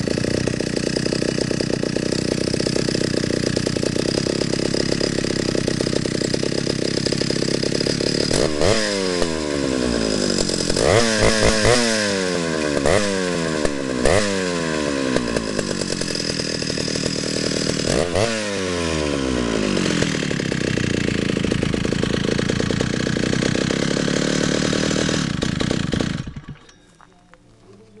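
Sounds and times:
chainsaw engine revving and idling: 0:00.0 - 0:26.7.

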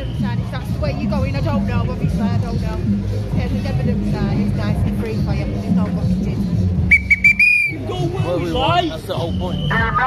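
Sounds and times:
shrill whistle toots: 0:06.9 - 0:07.8, 0:09.2 - 0:10.0.

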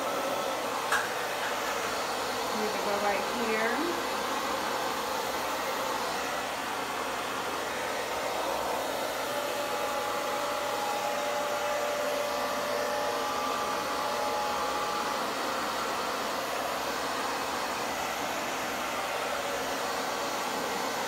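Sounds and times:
hair dryer blowing air: 0:00.0 - 0:21.0.

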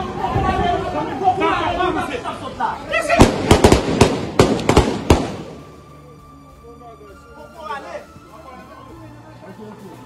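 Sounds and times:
gunshots: 0:03.2 - 0:05.7.

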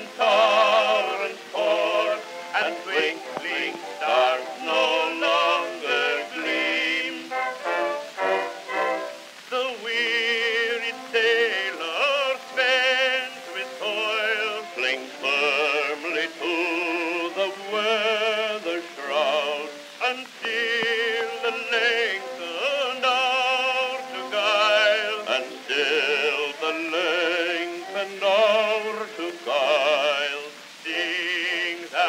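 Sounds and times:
men singing operatic duet: 0:00.0 - 0:32.0.

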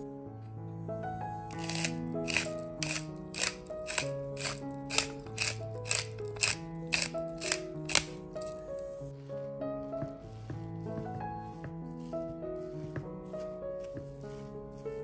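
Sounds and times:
background music: 0:00.0 - 0:15.0
pepper mill grinding: 0:01.5 - 0:08.8.

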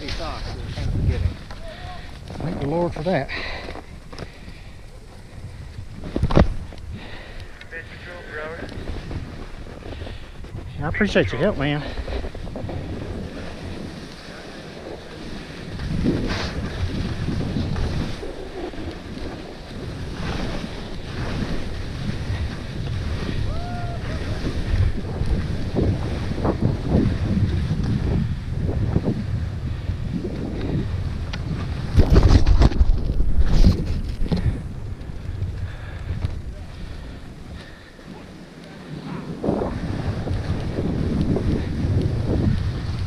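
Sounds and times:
skis hissing through snow: 0:00.0 - 0:02.0, 0:07.1 - 0:27.7
wind rushing over microphone: 0:00.0 - 0:43.0.

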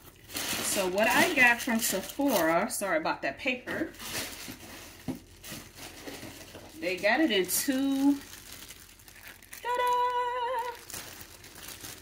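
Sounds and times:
packing paper crinkling: 0:00.0 - 0:02.7, 0:03.9 - 0:12.0.

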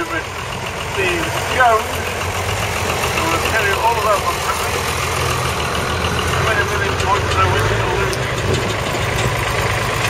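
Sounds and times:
background voices: 0:00.0 - 0:08.8
tractor engine idling: 0:00.0 - 0:10.0.

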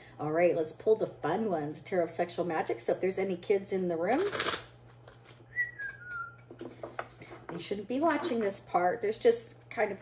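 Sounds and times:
faint whistled tone: 0:05.5 - 0:06.4.

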